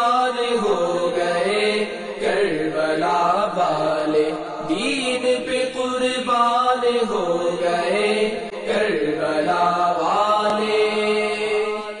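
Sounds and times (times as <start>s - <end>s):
person singing devotional chant: 0.0s - 12.0s.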